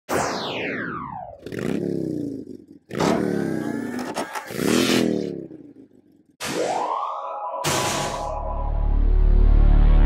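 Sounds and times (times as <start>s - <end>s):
motorcycle engine revving: 1.3s - 6.4s.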